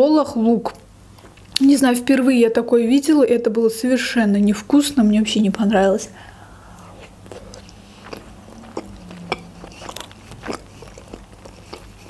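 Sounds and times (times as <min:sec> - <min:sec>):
close chewing with wet mouth clicks: 0:07.0 - 0:12.0.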